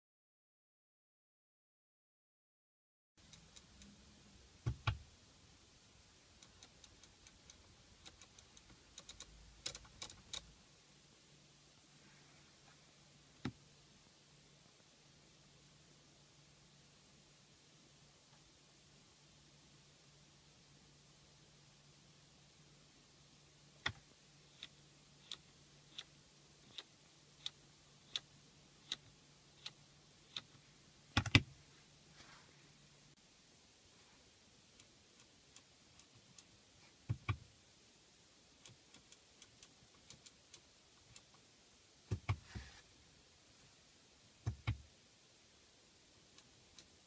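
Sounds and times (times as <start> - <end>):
rotary controller clicking: 6.4 - 10.5.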